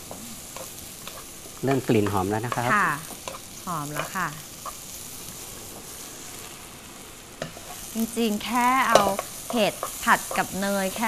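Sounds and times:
food sizzling in a pan: 0.0s - 11.0s
wooden spatula scraping a pan: 8.8s - 11.0s.

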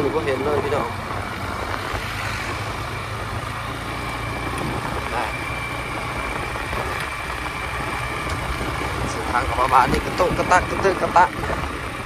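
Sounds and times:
motorcycle engine running: 0.0s - 12.0s
wind noise at microphone: 1.0s - 12.0s.

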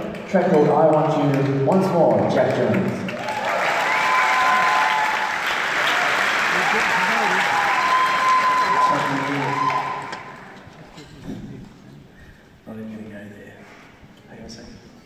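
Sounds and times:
audience applauding and cheering: 0.0s - 10.8s.

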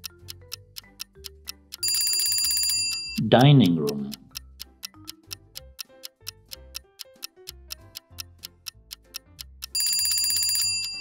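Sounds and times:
clock ticking: 0.0s - 11.0s
soft background music: 0.0s - 11.0s
ringing bell tone: 1.8s - 3.3s, 9.8s - 11.0s.

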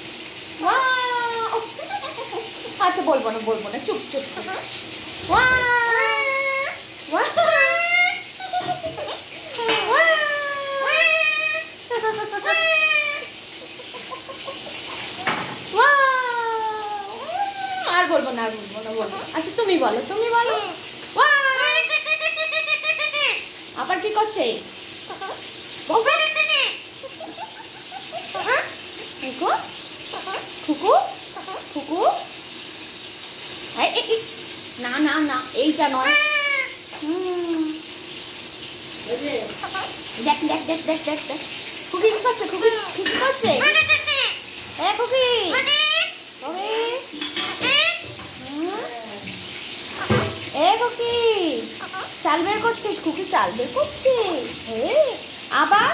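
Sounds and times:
parakeet calling: 4.1s - 23.8s, 24.8s - 32.4s, 35.4s - 37.0s, 39.5s - 40.5s, 42.5s - 48.2s, 51.6s - 52.8s.

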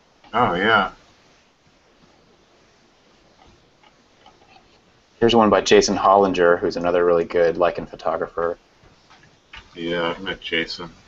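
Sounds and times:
background hiss: 0.0s - 11.0s
faint irregular clicks: 3.3s - 4.9s, 8.8s - 10.3s.

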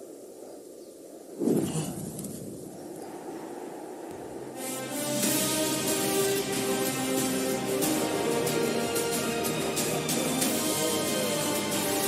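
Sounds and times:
outdoor wind ambience: 0.0s - 7.4s.

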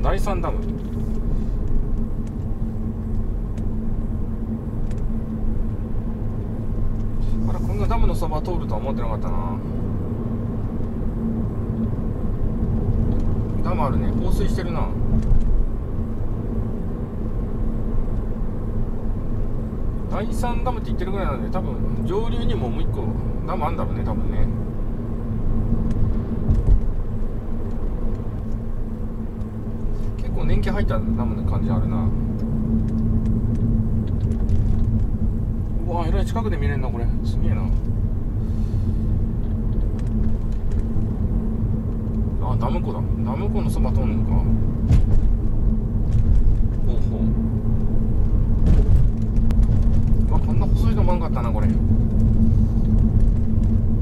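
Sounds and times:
car interior road rumble: 0.0s - 54.0s
steady hum: 0.0s - 54.0s
low thump: 44.8s - 45.5s, 48.5s - 50.0s.

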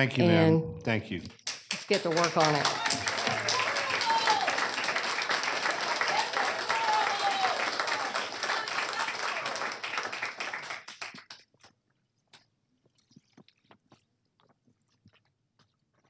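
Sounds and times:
audience applauding: 1.4s - 11.6s.

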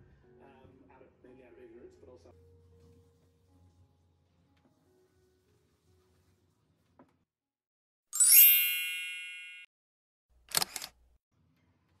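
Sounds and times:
bell-like chime sparkle: 8.2s - 9.7s
sharp clicks: 10.5s - 10.9s.

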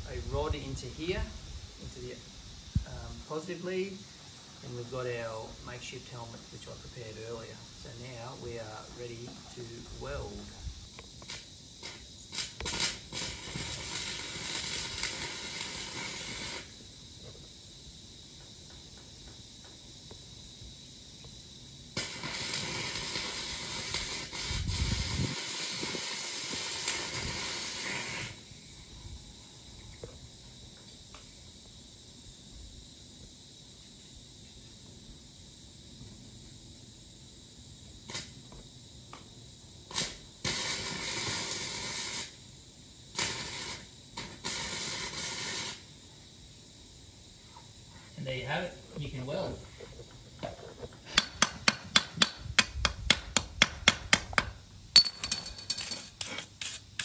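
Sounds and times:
welding arc crackling and hissing: 0.0s - 29.2s, 36.4s - 47.6s, 48.2s - 54.9s, 56.0s - 57.0s.

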